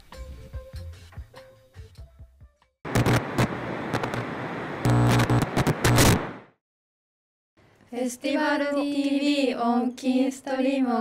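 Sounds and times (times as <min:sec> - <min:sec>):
low electrical hum: 0:02.9 - 0:06.4
crackling static and glitch noise: 0:02.9 - 0:06.6.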